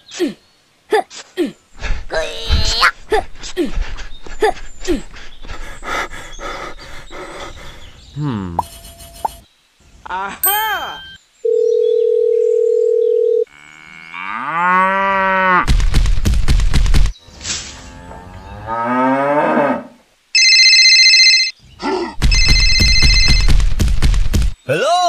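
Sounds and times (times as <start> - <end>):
electronic phone ringtone: 10.5 - 13.4, 20.4 - 21.5, 22.3 - 23.5
telephone dial tone: 11.5 - 13.4
cow mooing: 13.5 - 15.6.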